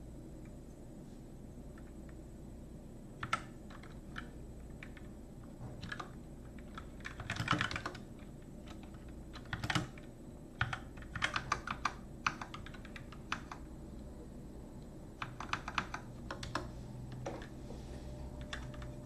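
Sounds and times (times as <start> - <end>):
computer keyboard typing: 3.2 - 13.7, 15.1 - 17.6, 18.3 - 19.0.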